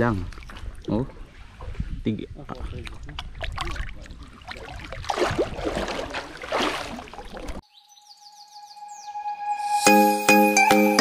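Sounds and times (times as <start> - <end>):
water splashing from wading: 0.0 - 7.6.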